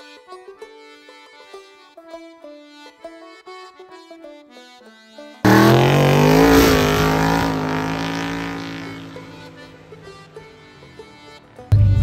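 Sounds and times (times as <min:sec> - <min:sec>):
car engine running hard: 0:05.5 - 0:12.0.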